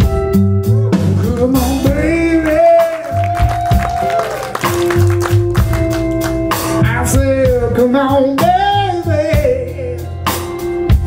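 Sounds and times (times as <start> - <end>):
blues-rock band playing live: 0.0 - 11.0.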